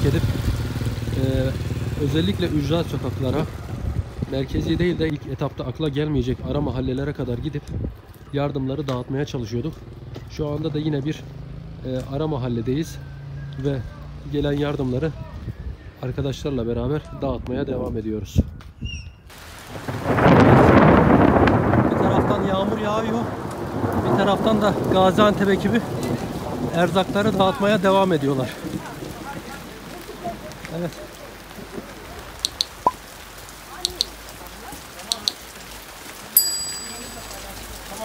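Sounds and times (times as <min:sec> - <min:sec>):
heavy rain: 0:00.0 - 0:12.6, 0:19.3 - 0:38.0
bright bell chime: 0:36.4 - 0:37.9.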